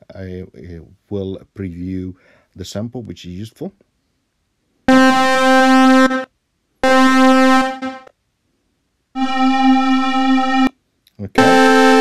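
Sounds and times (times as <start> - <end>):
bright held synthesizer note: 4.9 - 8.1, 9.2 - 10.7, 11.4 - 12.0.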